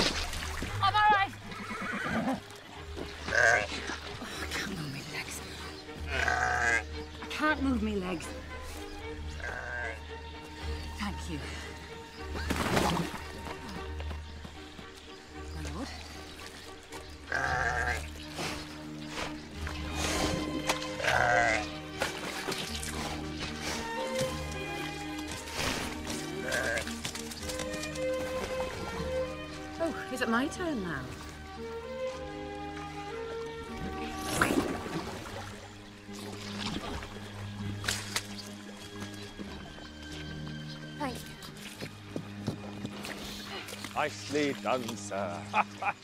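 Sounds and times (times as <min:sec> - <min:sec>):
orchestral film score: 0:00.0 - 0:46.0
ram bleating: 0:03.2 - 0:03.8, 0:06.1 - 0:06.8, 0:09.4 - 0:10.0, 0:17.3 - 0:18.1, 0:21.0 - 0:21.7, 0:26.3 - 0:26.9.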